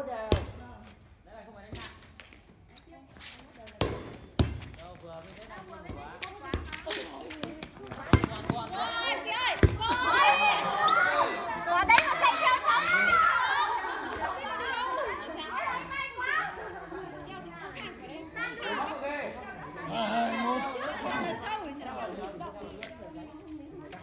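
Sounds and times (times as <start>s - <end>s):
people chattering and calling out: 0.0s - 24.0s.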